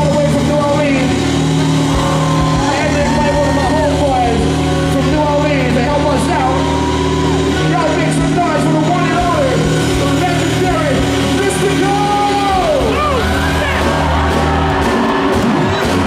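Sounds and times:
held bass notes: 0.0s - 16.0s
live funk band playing: 0.0s - 16.0s.

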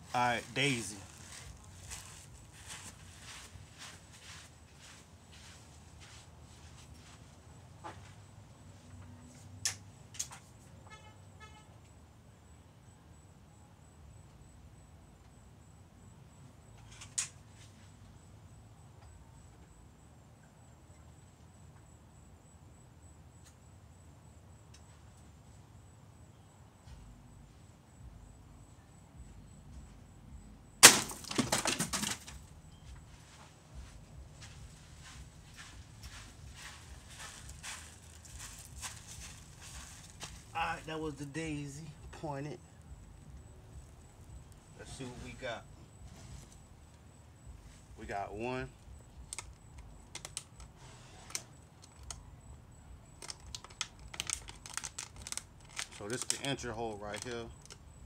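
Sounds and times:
airgun shot crack: 30.8s - 31.4s
plastic bottles clattering: 31.1s - 32.3s.

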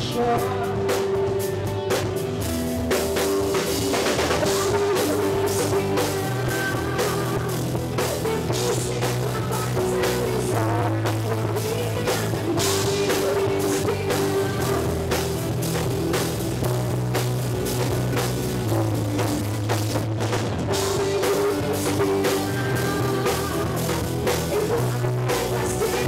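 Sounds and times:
live rock band playing: 0.0s - 26.0s.

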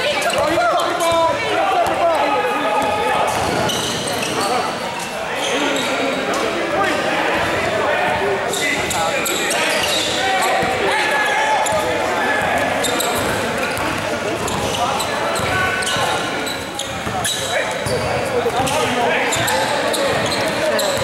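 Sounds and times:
players calling out: 0.0s - 21.0s
sneakers squeaking: 0.0s - 21.0s
ball bouncing on court: 2.8s - 3.9s, 11.7s - 14.8s.

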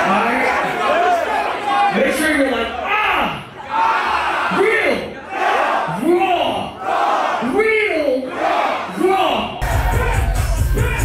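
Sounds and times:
concert crowd yelling together: 0.0s - 11.0s.

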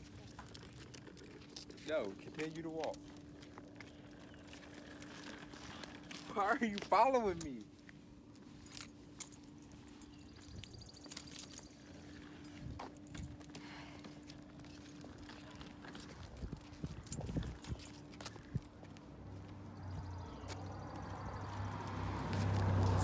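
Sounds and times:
footsteps in sandals: 0.0s - 23.0s
stroller wheels on pavement: 0.0s - 23.0s.

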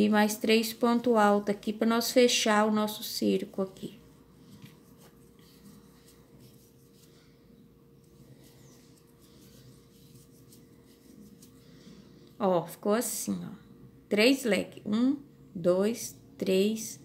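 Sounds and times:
crochet hook rustling yarn: 0.0s - 7.4s, 8.0s - 12.0s
faint steady hum: 0.0s - 17.0s.

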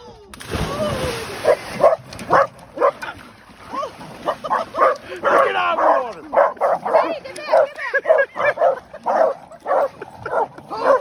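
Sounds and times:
big splash of water: 0.3s - 2.4s
dog barking: 1.4s - 3.0s, 4.4s - 11.0s.

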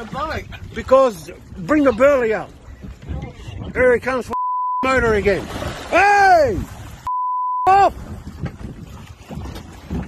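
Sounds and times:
wind buffeting microphone: 0.0s - 4.3s, 7.9s - 10.0s
water splashing and sloshing: 0.0s - 7.1s, 7.7s - 10.0s.

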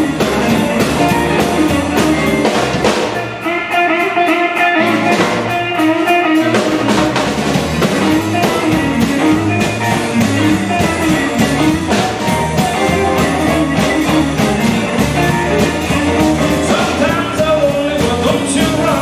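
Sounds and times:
bass guitar: 0.0s - 19.0s
drum kit: 0.0s - 19.0s
electric guitars: 0.0s - 19.0s.

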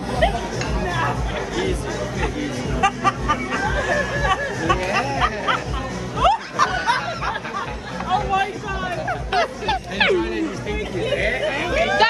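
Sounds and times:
background music with low beat: 0.0s - 12.0s
many voices chattering: 0.0s - 12.0s.

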